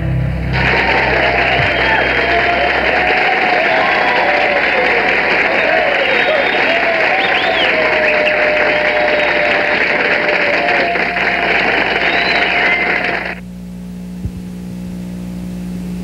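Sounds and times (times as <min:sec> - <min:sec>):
audience applauding and cheering: 0:00.5 - 0:13.4.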